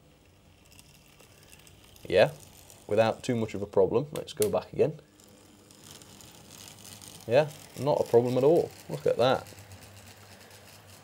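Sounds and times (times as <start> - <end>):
faint model locomotive running: 0.0 - 3.8, 5.0 - 11.0.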